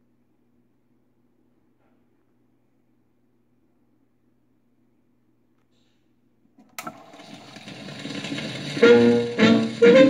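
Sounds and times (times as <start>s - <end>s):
music from a record: 8.5s - 10.0s.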